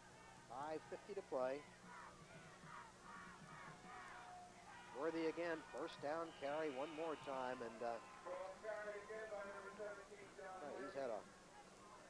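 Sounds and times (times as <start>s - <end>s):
distant shouting: 0.0s - 12.0s.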